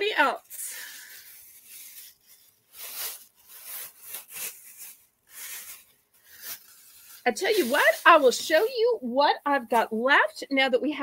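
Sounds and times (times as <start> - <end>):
rustling and rubbing strokes: 0.2 - 9.8.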